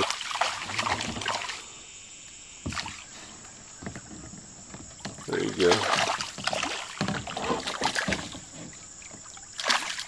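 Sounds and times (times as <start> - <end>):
fish splashing at water surface: 0.0 - 1.9, 5.1 - 10.0.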